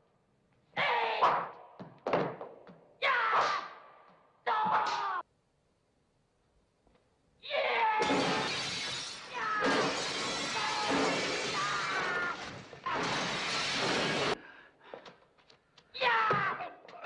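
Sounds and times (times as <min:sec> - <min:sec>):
glass shattering: 0:08.0 - 0:14.4.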